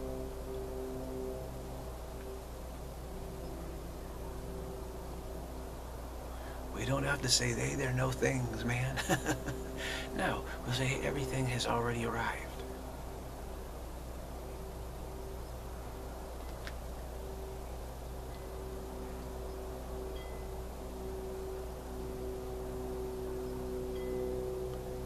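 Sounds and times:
steady low hum: 0.0 - 25.0
sustained chime-like tones: 6.7 - 25.0.

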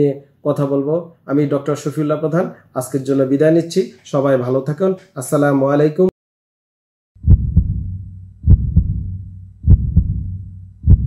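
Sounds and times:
heartbeat thumps: 7.2 - 11.0
low rumble: 7.2 - 11.0.

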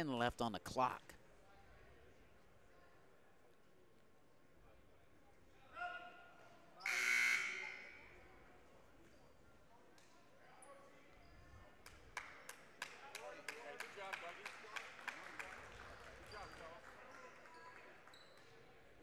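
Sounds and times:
scoreboard horn: 6.9 - 7.7.

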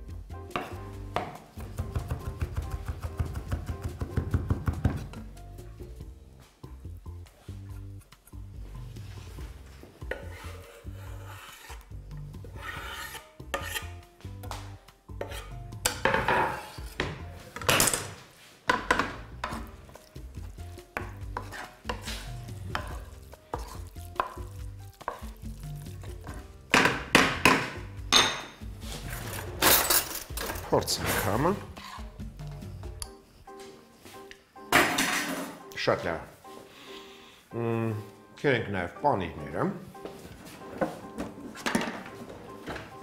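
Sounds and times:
spatula scraping frying pan: 10.0 - 11.9, 12.5 - 13.9, 15.2 - 17.0, 20.8 - 26.4, 31.7 - 32.2
food scraped off cutting board: 21.4 - 22.8.

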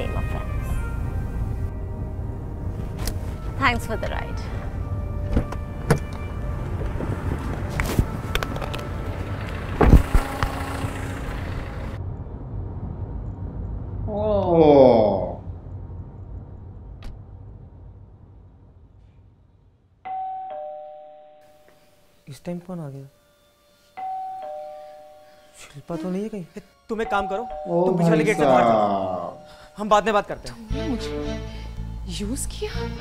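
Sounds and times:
low rumble in car cabin: 5.1 - 19.0
car door clicks: 5.3 - 7.0
two-note doorbell chime: 20.1 - 21.7, 24.0 - 25.4, 27.0 - 29.6.

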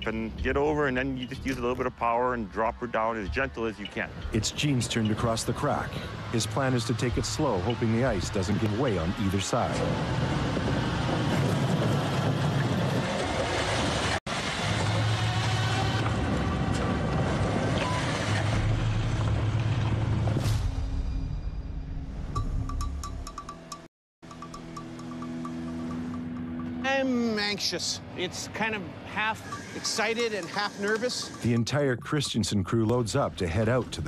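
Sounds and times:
tense background music: 0.0 - 13.5, 14.6 - 31.6
snow vehicle engine running: 5.7 - 20.4.

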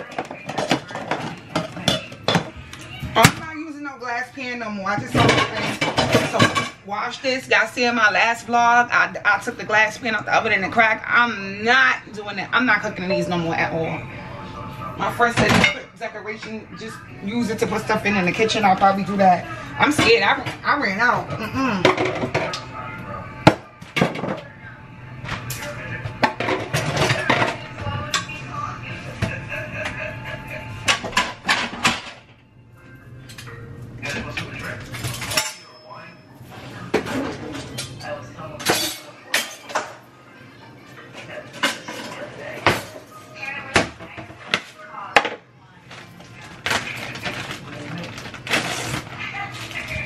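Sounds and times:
ceramic dishes clinking: 0.0 - 2.5.

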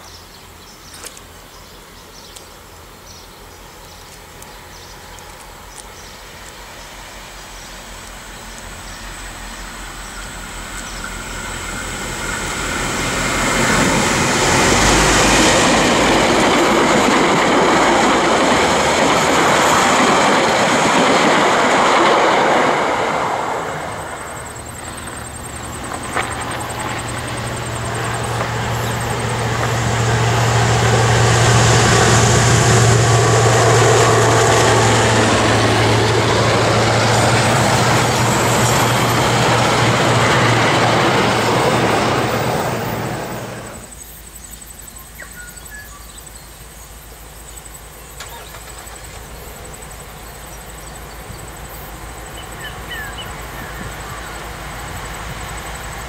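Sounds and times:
diesel locomotive engine: 0.0 - 56.0
train rail rumble: 0.0 - 56.0.

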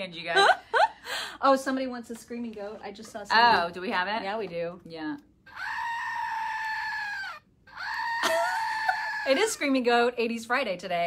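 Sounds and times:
toy goat screaming: 5.5 - 9.4.

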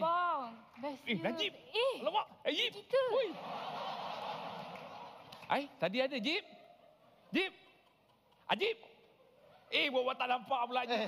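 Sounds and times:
studio audience crowd noise: 3.0 - 7.2.

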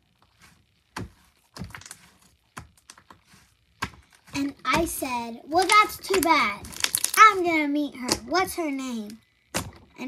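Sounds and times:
slime popping and clicking: 5.6 - 7.2.

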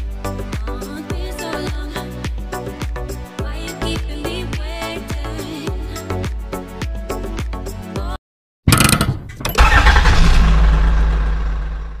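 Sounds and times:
engine cranking and starting: 8.7 - 12.0
engine rumbling: 8.7 - 12.0.

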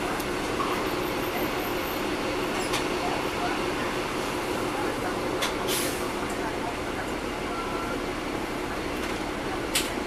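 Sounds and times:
bus diesel engine running: 0.0 - 10.0.

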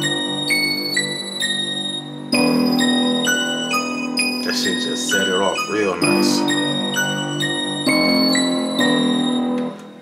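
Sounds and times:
bell and piano trap melody: 0.0 - 10.0.

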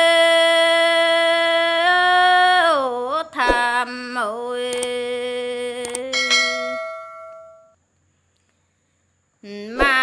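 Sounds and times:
woman singing a long note: 0.0 - 6.8, 9.4 - 10.0
soft clicks: 4.7 - 5.0, 5.8 - 6.1
bell-like ding: 6.2 - 7.8.

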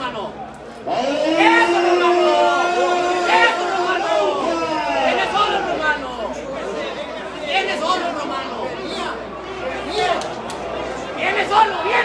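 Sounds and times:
crowd calling out and chattering: 0.0 - 12.0.

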